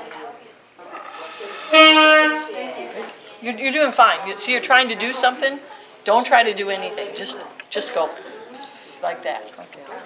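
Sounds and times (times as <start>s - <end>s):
trumpet steady note: 1.6s - 2.6s.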